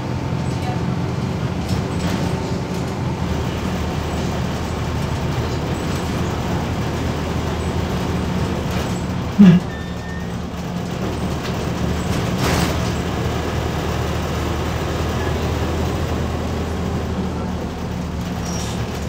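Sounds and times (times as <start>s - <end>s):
bus diesel engine running: 0.0s - 19.0s
road noise: 0.0s - 19.0s.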